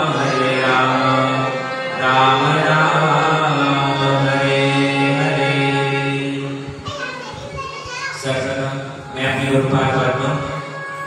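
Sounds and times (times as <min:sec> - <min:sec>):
man chanting: 0:00.0 - 0:06.7, 0:08.2 - 0:11.0
children's voices: 0:00.0 - 0:11.0
voices reciting prayers: 0:00.0 - 0:11.0.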